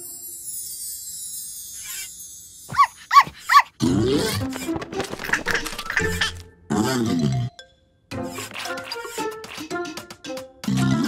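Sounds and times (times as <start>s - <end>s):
cartoon puppy yapping: 2.7s - 6.4s.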